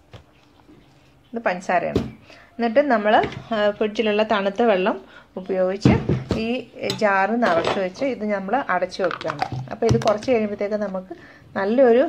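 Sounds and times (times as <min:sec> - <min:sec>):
woman talking: 0:01.4 - 0:12.0.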